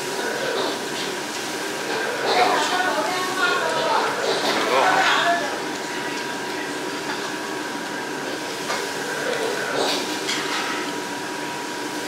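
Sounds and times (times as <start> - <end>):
mechanical hum and hiss: 0.0 - 12.0
thin steady whine: 0.0 - 12.0.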